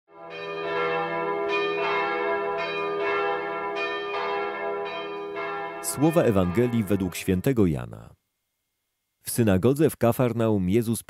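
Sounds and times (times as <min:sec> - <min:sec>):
bells struck ringing: 0:00.2 - 0:07.5.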